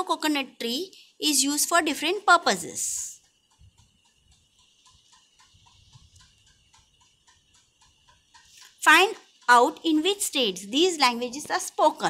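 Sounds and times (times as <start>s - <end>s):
rapid regular ticking: 1.5s - 12.0s.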